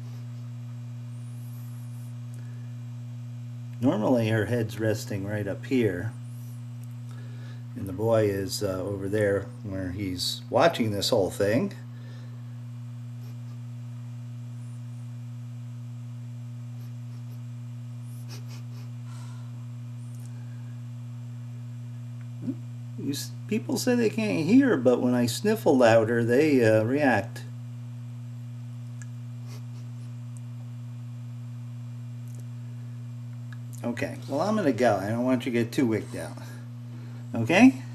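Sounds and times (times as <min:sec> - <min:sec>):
low electrical hum: 0:00.0 - 0:37.9.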